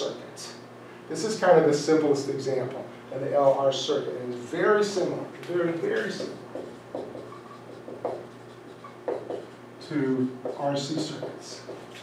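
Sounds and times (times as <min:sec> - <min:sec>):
marker writing on whiteboard: 0:05.5 - 0:12.0.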